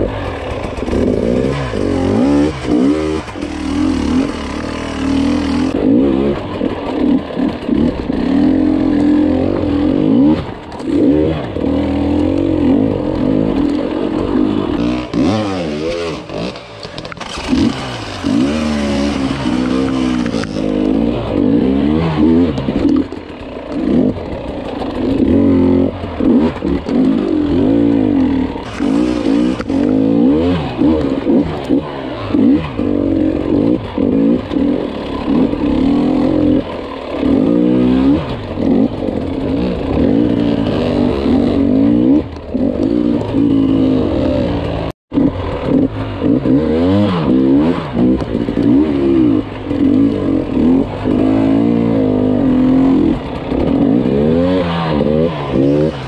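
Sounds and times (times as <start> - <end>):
dirt bike engine revving: 0.0 - 56.0.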